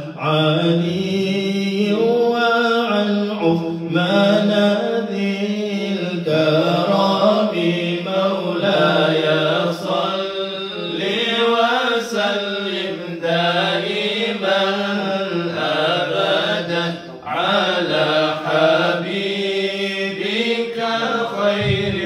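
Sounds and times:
men chanting melodically: 0.0s - 22.0s.

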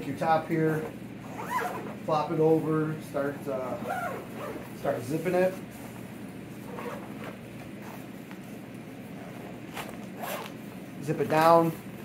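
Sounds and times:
zipper being drawn closed: 1.3s - 2.0s, 6.6s - 8.1s, 9.2s - 10.6s
fabric handling: 3.2s - 11.8s.

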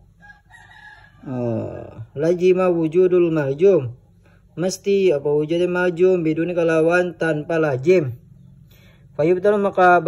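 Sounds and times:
rooster crowing: 0.0s - 2.1s.

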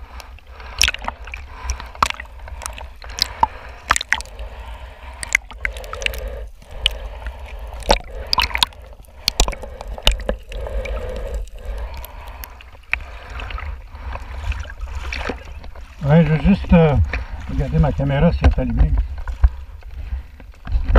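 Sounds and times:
water gurgling and sloshing: 0.0s - 20.9s
bubbles popping and clicking: 0.8s - 4.6s, 5.2s - 13.6s.

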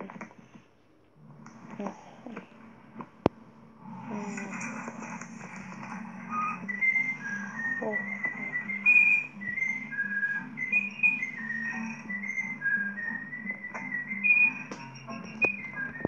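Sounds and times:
low steady background tone: 0.0s - 16.0s
whistled tune: 5.6s - 16.0s.

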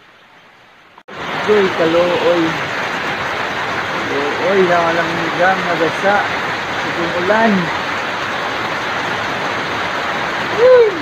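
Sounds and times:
rain dripping through palm fronds: 0.0s - 11.0s
person exclaiming: 10.5s - 11.0s.

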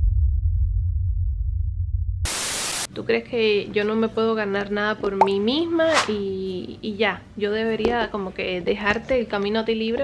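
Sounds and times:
loud deep rumble: 0.0s - 2.2s
static hiss burst: 2.3s - 2.9s.

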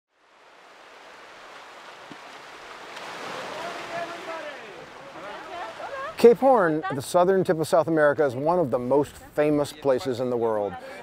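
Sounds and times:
surf washing onto rocky beach: 0.2s - 6.9s.

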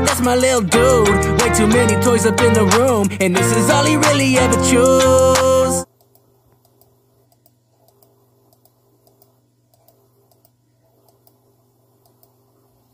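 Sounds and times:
computer clicks: 5.9s - 11.4s, 12.0s - 12.4s.

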